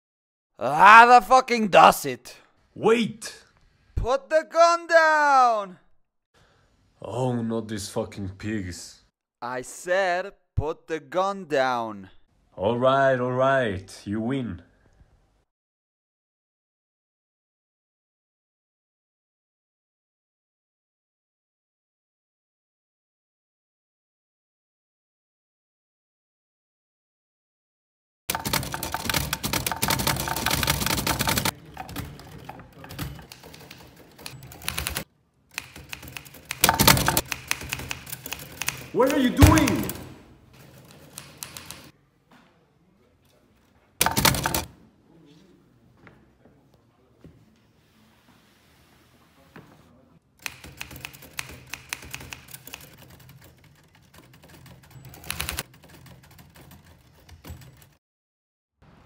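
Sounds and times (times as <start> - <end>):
typewriter keys clacking: 28.3 - 41.9, 44.0 - 44.7, 50.4 - 58.0.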